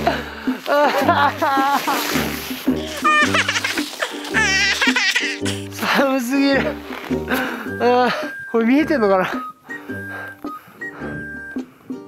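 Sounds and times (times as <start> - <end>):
man laughing: 0.0 - 6.8
background music with bass: 0.0 - 12.0.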